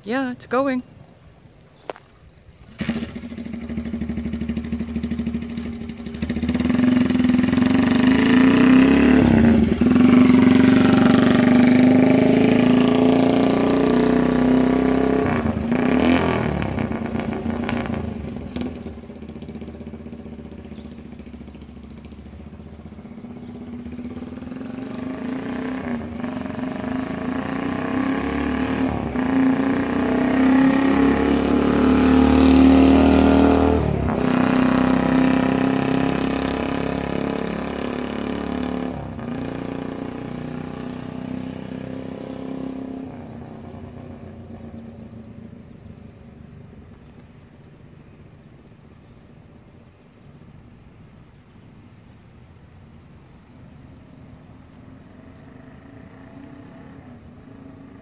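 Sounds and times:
two-stroke motorcycle engine running: 2.7 - 42.8.

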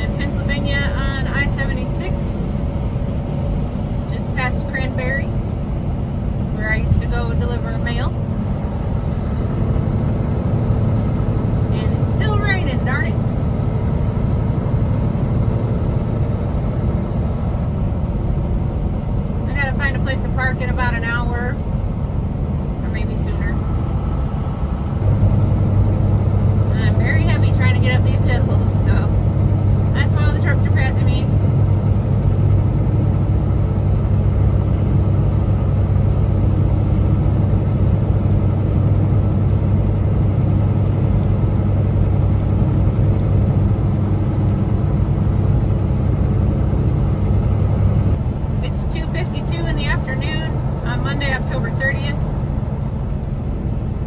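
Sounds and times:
low hum: 0.0 - 54.0
truck cab drone at speed: 0.0 - 54.0
tyres on wet road: 0.0 - 54.0.

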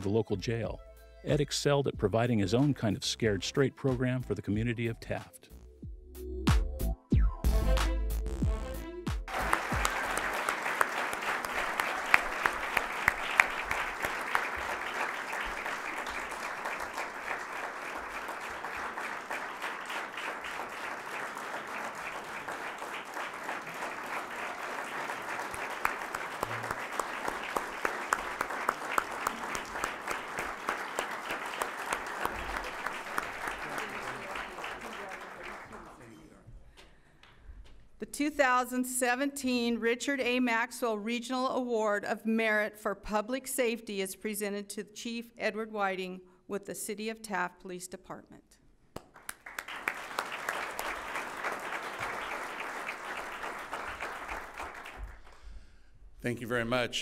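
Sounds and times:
audience applause: 9.3 - 36.3, 49.1 - 55.5.

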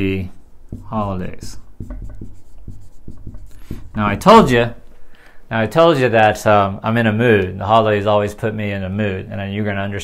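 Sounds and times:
marker writing on whiteboard: 0.7 - 4.5.

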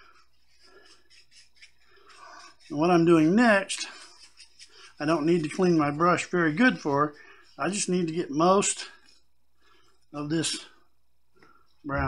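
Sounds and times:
paintbrush rubbed in towel: 0.0 - 9.3.

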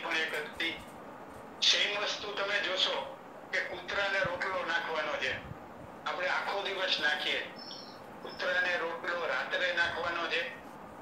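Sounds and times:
man speaking over a webinar: 0.0 - 0.9, 1.6 - 5.5, 6.1 - 7.6, 8.2 - 10.6.

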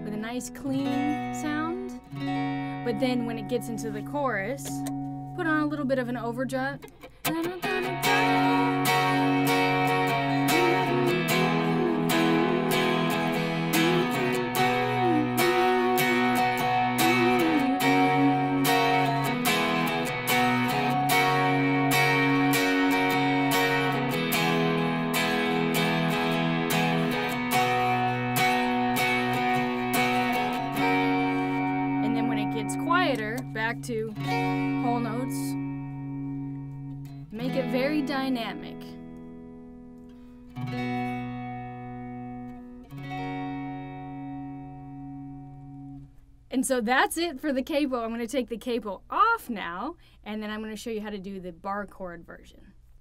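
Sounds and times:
electric guitar strumming chords: 0.0 - 46.1.

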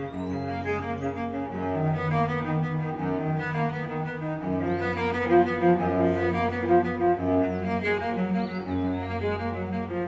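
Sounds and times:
bowed string ensemble music: 0.0 - 10.0.

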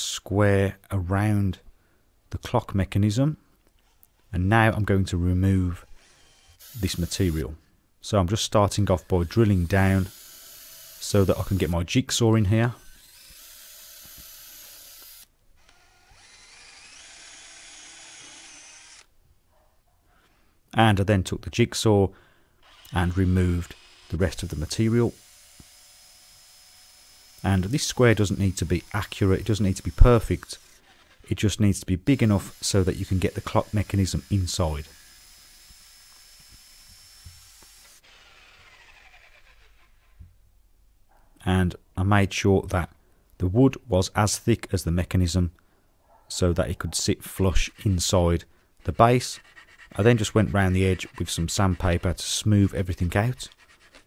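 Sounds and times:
electric jigsaw cutting wood: 5.8 - 7.4, 8.8 - 11.8, 12.8 - 19.1, 22.6 - 31.2, 32.1 - 40.1, 49.2 - 54.0
cordless drill boring wood: 5.8 - 7.5, 8.6 - 11.9, 12.5 - 19.1, 22.6 - 31.4, 32.0 - 40.2, 47.2 - 54.0
motor whine winding down: 12.8 - 19.1, 32.1 - 40.2.

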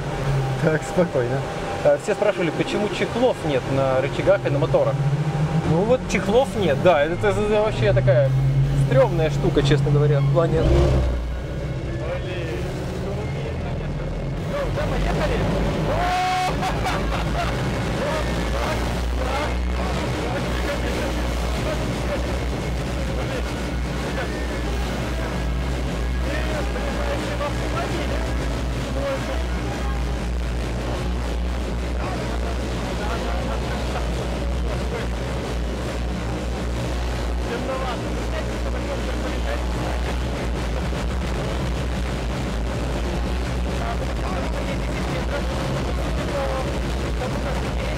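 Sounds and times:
electric rotors humming: 0.0 - 47.9.

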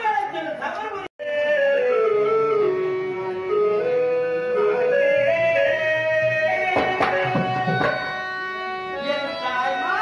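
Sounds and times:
keyboard accompaniment: 1.2 - 10.0.

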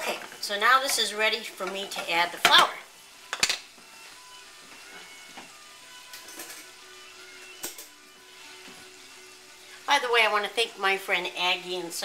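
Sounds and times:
faint background music: 0.0 - 12.0
sausage sizzling in a skillet: 0.0 - 12.0.

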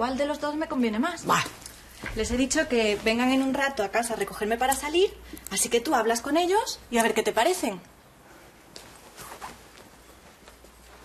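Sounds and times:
faint rustling and brushing: 1.8 - 4.4, 8.2 - 11.0
soft handling sounds: 8.0 - 11.0.

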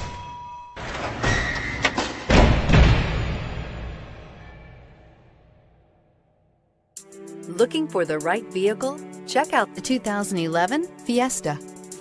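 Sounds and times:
deep ringing thud: 0.0 - 5.4
music: 7.0 - 12.0.

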